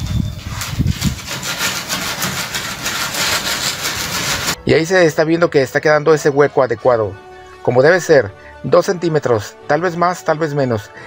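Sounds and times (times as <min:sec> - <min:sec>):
rule scraping wet concrete: 0:00.0 - 0:04.6.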